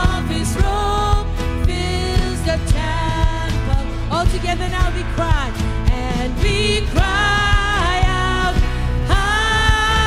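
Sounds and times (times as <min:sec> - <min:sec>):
bass: 0:00.0 - 0:10.0
guitar: 0:00.0 - 0:10.0
person singing: 0:00.0 - 0:10.0
steady drum beat: 0:00.0 - 0:10.0.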